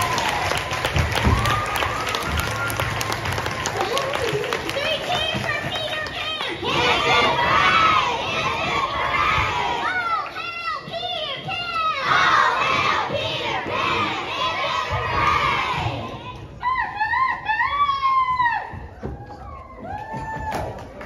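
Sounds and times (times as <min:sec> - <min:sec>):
children shouting and cheering: 0:00.0 - 0:20.8
high whoops: 0:16.6 - 0:21.0.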